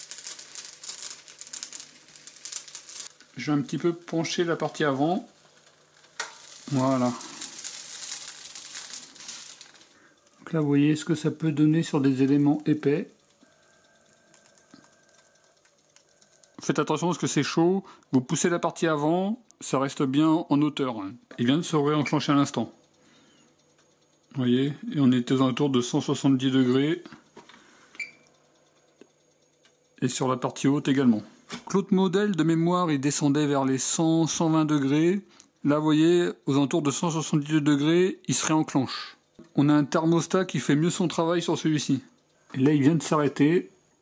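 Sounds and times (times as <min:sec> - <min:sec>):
sandwich sizzling on contact grill: 0:00.0 - 0:19.4, 0:21.4 - 0:32.1, 0:33.2 - 0:44.0
faint steady hum: 0:00.0 - 0:44.0.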